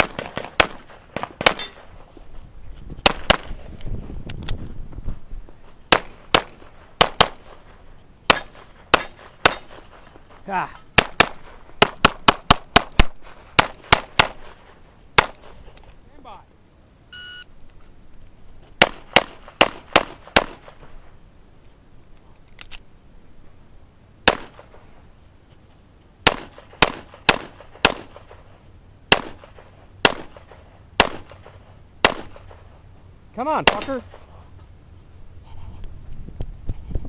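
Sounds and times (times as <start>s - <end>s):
pistol firing rapid shots: 0.0s - 1.8s, 3.0s - 3.5s, 5.9s - 7.6s, 8.3s - 10.0s, 11.0s - 14.6s, 15.2s - 15.5s, 18.8s - 20.8s, 24.2s - 24.8s, 26.2s - 28.4s, 29.1s - 32.6s, 33.6s - 34.2s.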